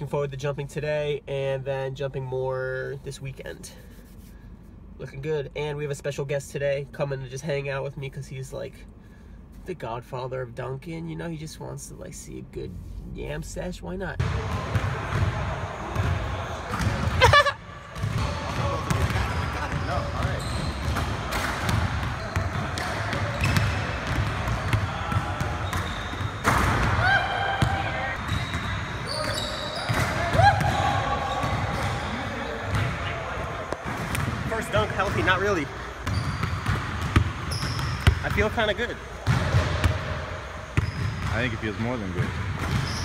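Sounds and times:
people talking: 0:09.7 - 0:17.4, 0:34.4 - 0:35.8, 0:38.2 - 0:39.0, 0:41.3 - 0:42.3
basketballs bouncing on hardwood: 0:18.0 - 0:32.0, 0:33.8 - 0:38.6, 0:39.2 - 0:40.0.

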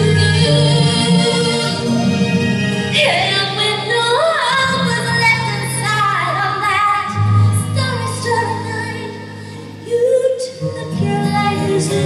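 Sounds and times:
woman singing ballad: 0:02.9 - 0:12.0.

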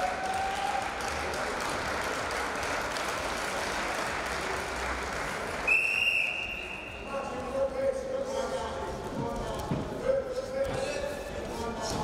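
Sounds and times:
crowd applause: 0:00.0 - 0:06.3
referee's whistle blast: 0:05.7 - 0:07.1.

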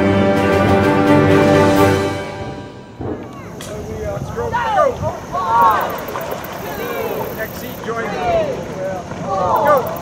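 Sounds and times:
crew shouting rhythmic calls: 0:04.4 - 0:10.0.

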